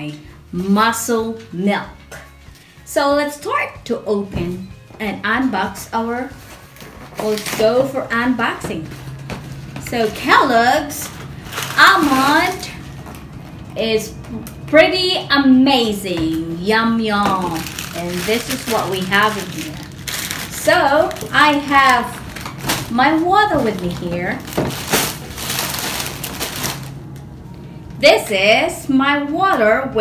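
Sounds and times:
plastic bag crinkling: 6.6 - 7.8, 8.9 - 13.6, 17.2 - 27.2
faint steady hum: 7.4 - 30.0
cereal flakes rustling: 17.4 - 27.0.

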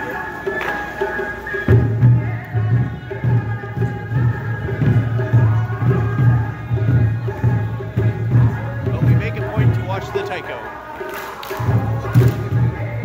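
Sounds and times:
parade music with drumbeat: 0.0 - 13.0.

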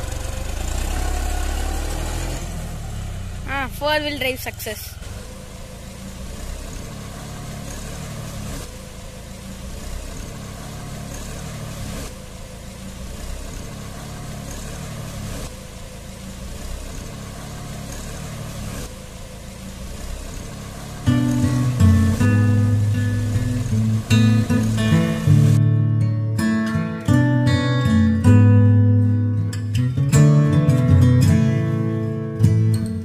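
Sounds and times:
tractor diesel engine running: 0.0 - 33.0.

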